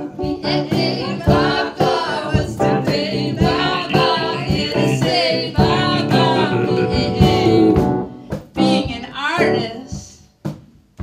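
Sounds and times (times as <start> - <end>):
keyboard: 0.0 - 9.8.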